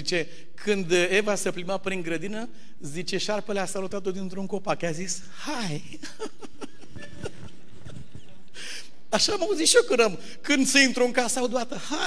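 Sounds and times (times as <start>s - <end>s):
soft laughter: 6.0s - 8.6s.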